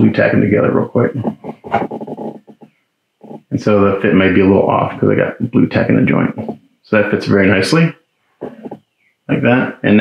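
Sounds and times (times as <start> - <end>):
man talking: 0.0 - 1.5, 3.5 - 8.0, 9.3 - 10.0.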